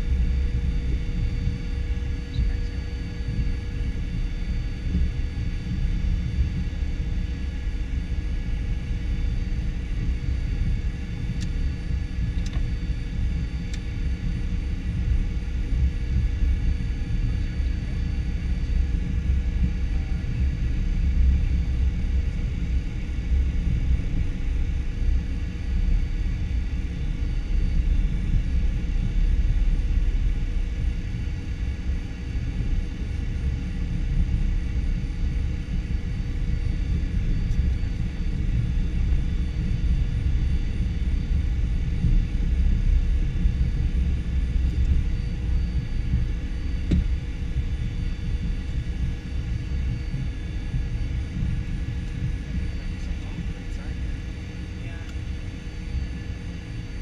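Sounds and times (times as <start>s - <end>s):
cockpit low rumble: 0.0s - 57.0s
jet engine whine: 0.0s - 57.0s.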